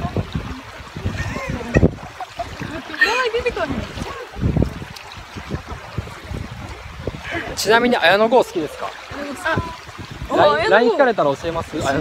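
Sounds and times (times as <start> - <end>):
small waves washing: 0.0 - 12.0
wind buffeting microphone: 0.0 - 12.0.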